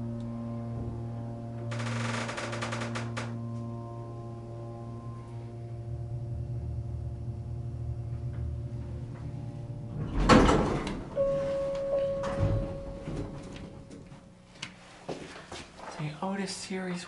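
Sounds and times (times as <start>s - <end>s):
elevator humming: 0.0s - 15.1s
elevator car jolt: 8.2s - 14.1s
elevator doors clicking open: 8.2s - 14.2s
single-tone arrival chime: 11.2s - 13.6s.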